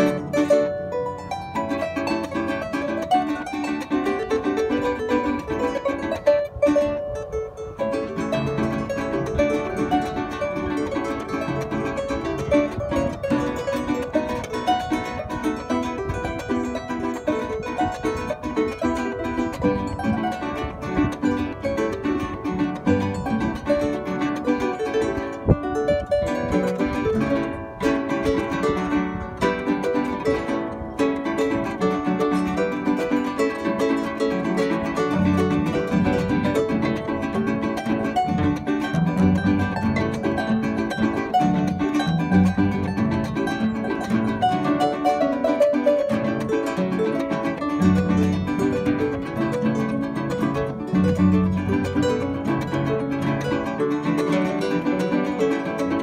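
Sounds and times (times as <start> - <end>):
harp playing fast melody: 0.0 - 56.0
strummed cuatro: 0.0 - 56.0.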